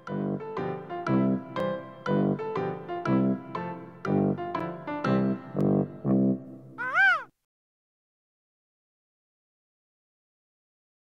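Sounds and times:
seagull cry: 0:06.8 - 0:07.3.

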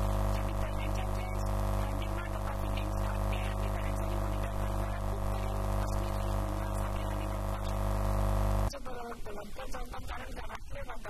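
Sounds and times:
electrical mains hum: 0:00.0 - 0:09.0
woman's voice: 0:00.0 - 0:11.0.

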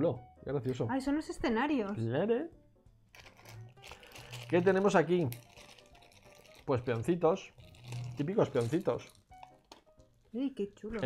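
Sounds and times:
plastic bag rustling: 0:03.1 - 0:10.2.

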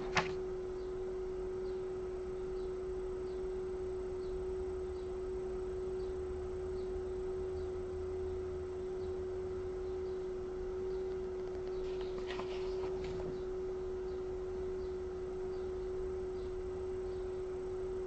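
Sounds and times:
steady drone tone: 0:00.0 - 0:18.0.

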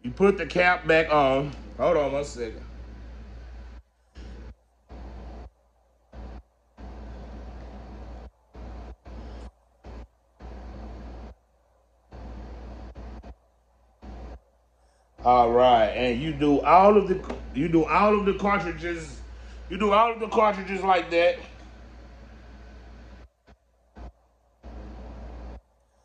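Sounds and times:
background hiss: 0:00.0 - 0:26.0
low hum: 0:00.0 - 0:26.0.

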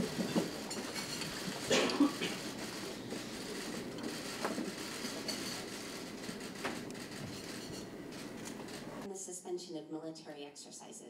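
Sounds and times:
furniture clatter: 0:00.0 - 0:09.1.

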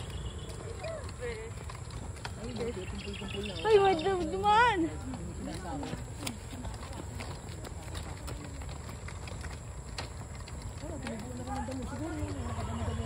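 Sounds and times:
faint voices of people talking: 0:00.0 - 0:13.0.

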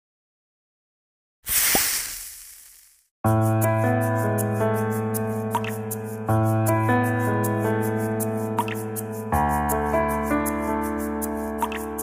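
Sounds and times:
hiss sound effect: 0:01.5 - 0:03.0.

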